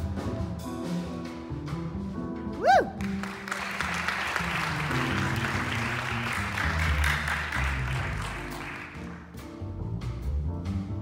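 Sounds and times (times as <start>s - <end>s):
double bass: 0.0s - 3.2s, 3.8s - 11.0s
piano: 0.0s - 11.0s
audience applause: 2.9s - 9.3s.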